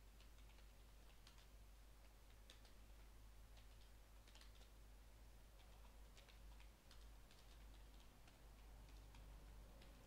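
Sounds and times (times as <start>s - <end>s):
computer keyboard keystrokes: 0.2s - 2.8s, 3.5s - 4.8s, 5.6s - 10.0s.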